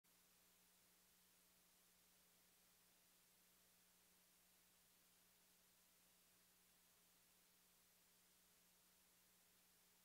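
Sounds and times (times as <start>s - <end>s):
faint steady hiss: 0.0s - 10.0s
faint low hum: 0.1s - 10.0s.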